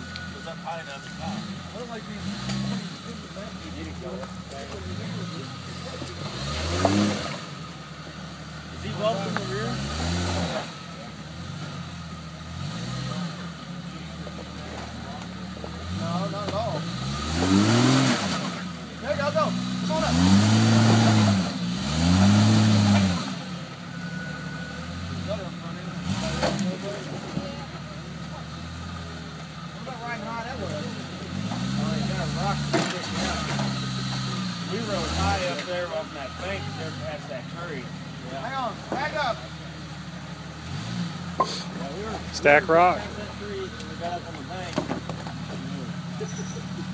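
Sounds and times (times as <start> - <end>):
engine revving under load: 0.0 - 46.9.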